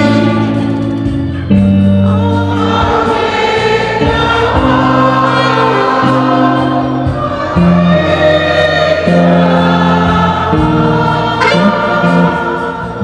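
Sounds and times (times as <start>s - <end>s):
congregation singing a hymn: 0.0s - 13.0s
instrumental accompaniment: 0.0s - 13.0s.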